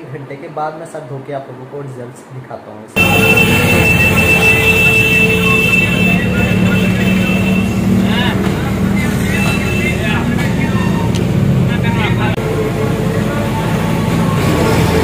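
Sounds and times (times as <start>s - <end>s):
indistinct voices: 3.0s - 15.0s
vehicle engines running: 3.0s - 15.0s.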